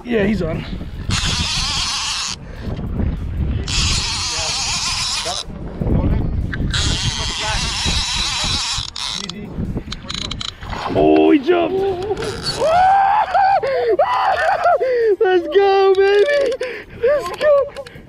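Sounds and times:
wind rumble on microphone: 0.0s - 14.7s
fishing reel drag buzzing: 0.9s - 2.4s, 3.6s - 5.5s, 6.6s - 10.7s, 12.0s - 12.7s.

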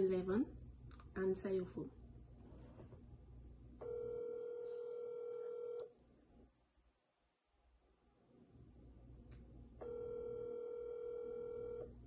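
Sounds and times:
phone ringback tone: 3.8s - 5.9s, 9.8s - 11.9s.

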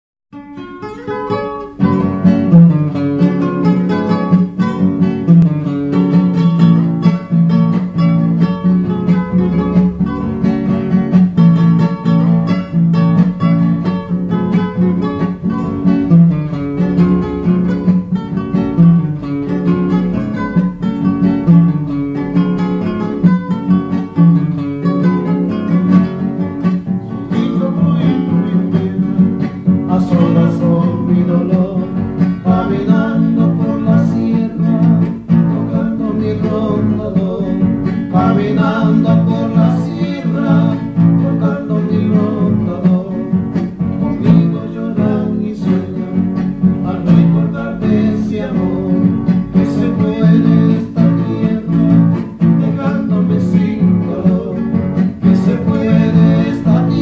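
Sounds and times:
acoustic guitars playing: 0.3s - 57.0s.

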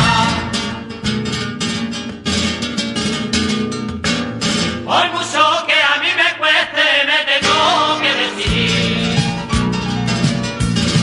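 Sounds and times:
person singing: 0.0s - 0.7s, 4.9s - 9.2s
flamenco guitar strumming: 0.0s - 6.4s, 7.4s - 11.0s.

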